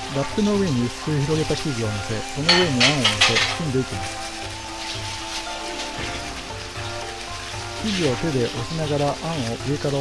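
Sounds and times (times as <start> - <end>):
cling film crackling: 0.0 - 10.0
soft background music: 0.0 - 10.0.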